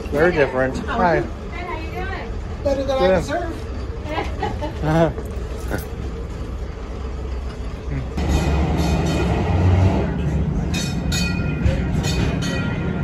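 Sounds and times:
trolley rumbling on rails: 0:00.0 - 0:13.0.

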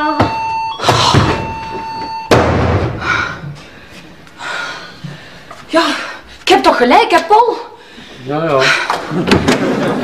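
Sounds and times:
door slamming: 0:00.2 - 0:03.2.

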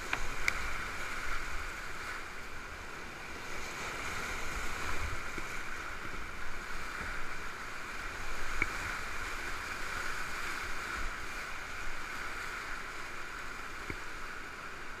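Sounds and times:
whitewater rapids rushing: 0:00.0 - 0:15.0.

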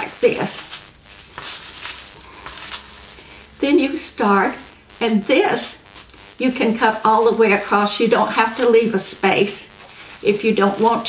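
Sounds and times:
woman speaking: 0:00.0 - 0:00.7, 0:03.6 - 0:05.8, 0:06.4 - 0:11.0
tissue paper rustling: 0:00.2 - 0:03.0, 0:09.8 - 0:11.0.

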